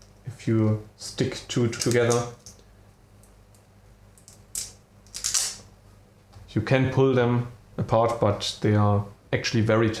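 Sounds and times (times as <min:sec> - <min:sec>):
fastener strips clicking: 0:01.8 - 0:02.6, 0:04.2 - 0:05.6
fastener strips snapping shut: 0:04.2 - 0:05.6.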